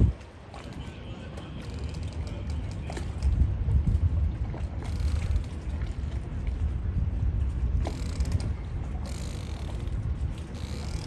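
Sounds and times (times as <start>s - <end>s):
wind on microphone: 0.0s - 0.3s, 2.3s - 11.0s
water lapping and slapping: 0.0s - 11.0s.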